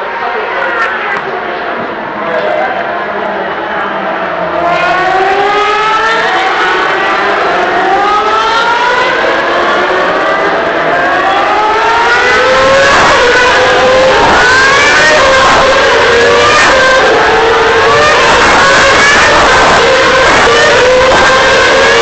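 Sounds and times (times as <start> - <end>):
racing car engines revving high: 0.0 - 22.0
racing car passing close: 1.2 - 22.0.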